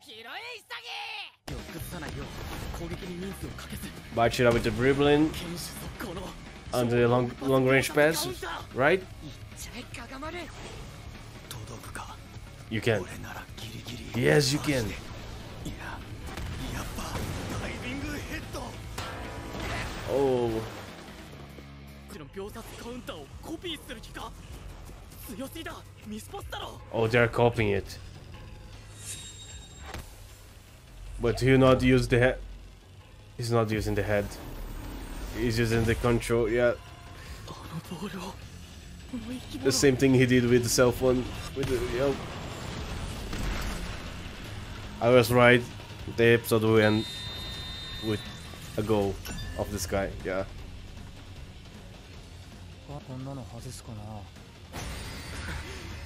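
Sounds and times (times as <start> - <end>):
character dialogue: 0.0 - 10.7
low background music: 1.5 - 56.0.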